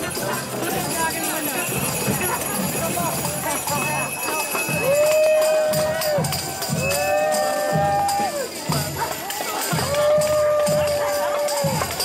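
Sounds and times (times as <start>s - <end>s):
crowd talking and calling: 0.0s - 12.0s.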